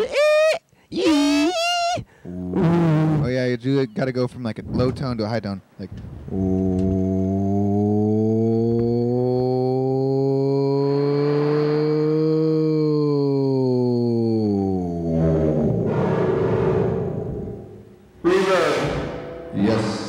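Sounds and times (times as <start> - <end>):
man humming low drone: 6.3 - 16.2.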